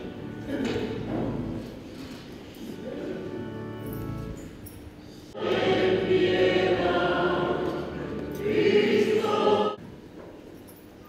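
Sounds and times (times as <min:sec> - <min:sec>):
choir singing: 0:05.3 - 0:09.8.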